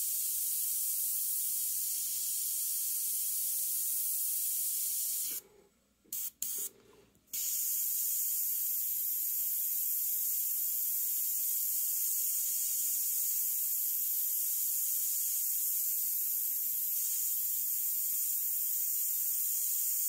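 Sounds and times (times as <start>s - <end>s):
airbrush hissing: 0.0s - 5.4s, 6.2s - 20.0s.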